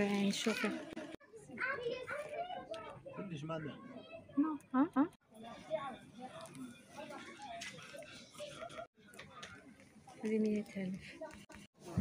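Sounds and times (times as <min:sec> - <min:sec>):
chatter of shoppers: 0:00.0 - 0:12.0
children's voices: 0:00.1 - 0:03.2, 0:05.6 - 0:09.4.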